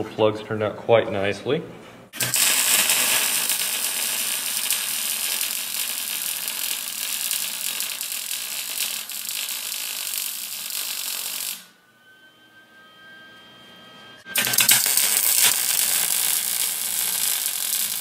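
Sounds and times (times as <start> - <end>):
arc welder crackling sizzle: 2.1 - 11.7, 14.2 - 18.0.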